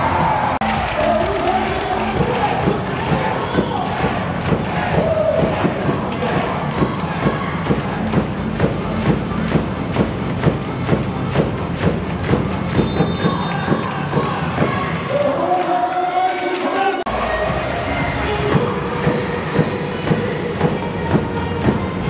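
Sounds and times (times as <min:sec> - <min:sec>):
crowd cheering: 0:00.0 - 0:08.0
arena music with thumping beat: 0:00.0 - 0:15.5, 0:17.1 - 0:22.0.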